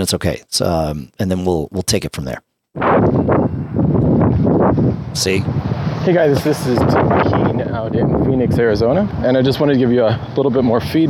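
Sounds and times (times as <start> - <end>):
wind noise on microphone: 2.8 - 11.0.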